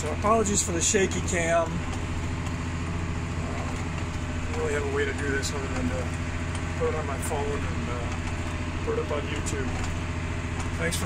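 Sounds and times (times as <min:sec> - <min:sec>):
tractor diesel engine drone: 0:00.0 - 0:11.0.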